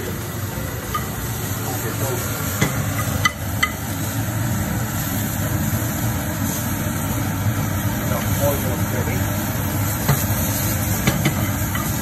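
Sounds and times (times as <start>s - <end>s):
exhaust hood drone: 0.0s - 12.0s
mushrooms sauteing in a pan: 0.0s - 12.0s.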